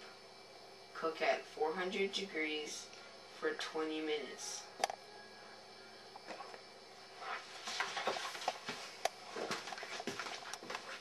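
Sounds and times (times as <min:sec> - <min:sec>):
footsteps in a room: 0:06.2 - 0:11.0.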